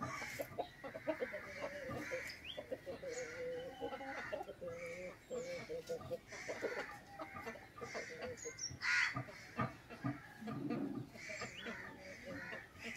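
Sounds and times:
chickens clucking: 0.0s - 12.9s.

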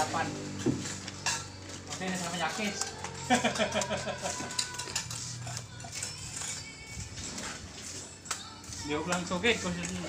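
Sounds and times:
trowel scraping mortar: 0.8s - 10.0s.

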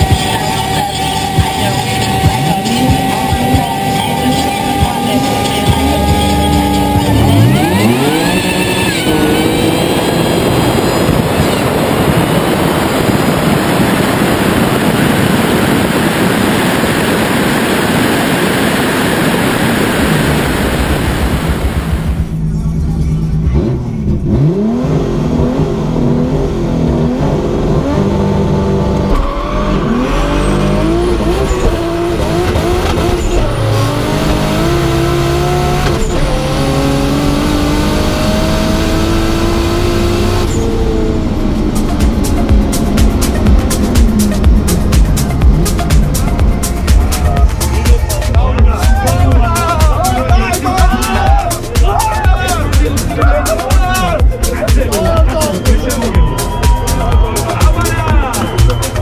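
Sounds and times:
wind and engine rush of car at speed: 0.0s - 54.6s
race car engine revving: 0.0s - 59.0s.

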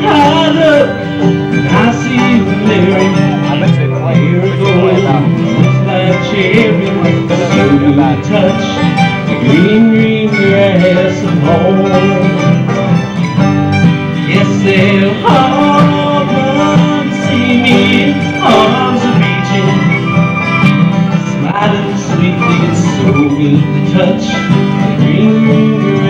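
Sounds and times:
acoustic bluegrass band playing: 0.0s - 26.0s.

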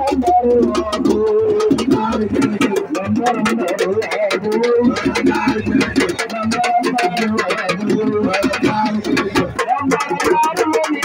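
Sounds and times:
fast beat of sharp strikes: 0.0s - 11.0s.

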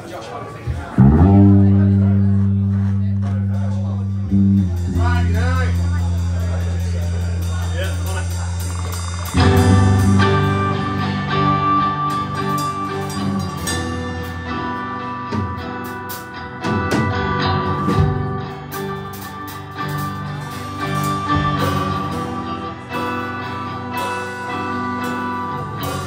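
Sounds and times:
rock band with drums: 0.0s - 26.0s
low bass and guitar notes: 0.7s - 26.0s.

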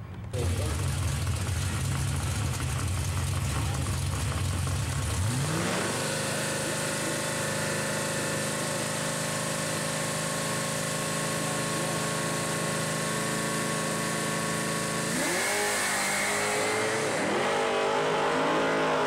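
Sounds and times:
car engine revving and accelerating: 0.4s - 19.0s.

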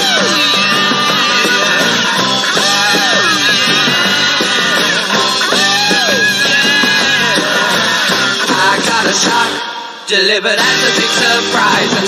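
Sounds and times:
rock guitar riff: 0.0s - 10.0s, 10.6s - 12.0s.

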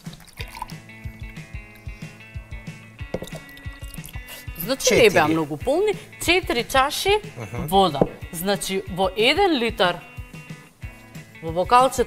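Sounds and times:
water pouring into a glass: 0.0s - 0.9s, 3.2s - 4.4s
background music: 0.0s - 12.0s.

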